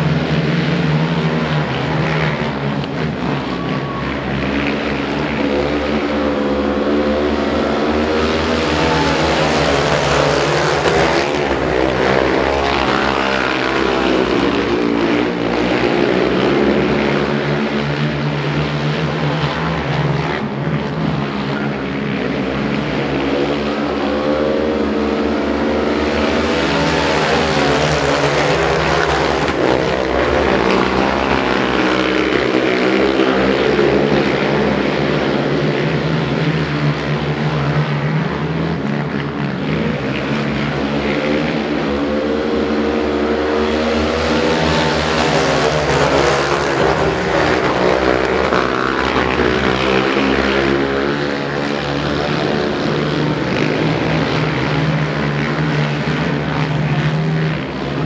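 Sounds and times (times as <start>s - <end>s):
quad engines revving: 0.0s - 58.0s.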